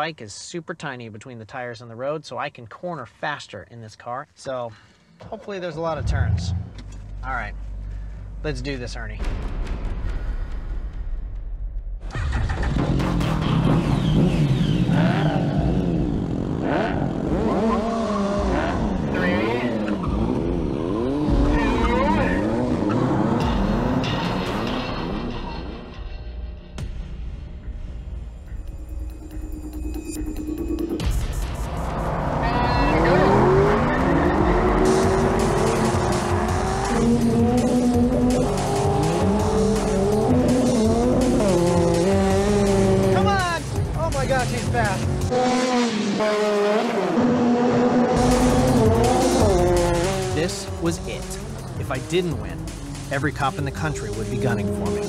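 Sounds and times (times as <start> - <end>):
car engine revving and accelerating: 5.9 - 7.2, 12.6 - 25.4, 31.8 - 55.0
motorcycle engine revving: 12.1 - 25.0, 31.9 - 55.0.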